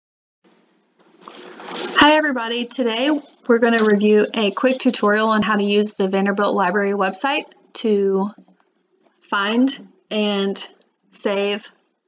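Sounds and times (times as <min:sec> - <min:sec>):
person speaking: 0:01.3 - 0:08.4, 0:09.3 - 0:11.7.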